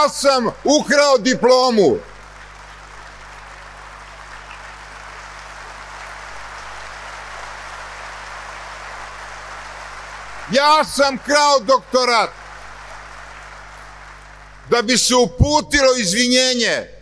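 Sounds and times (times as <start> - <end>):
audience applauding: 0.0 - 15.4.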